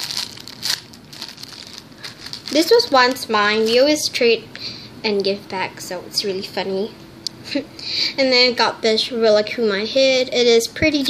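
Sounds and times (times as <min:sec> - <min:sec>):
plastic packaging crinkling: 0:00.0 - 0:03.9.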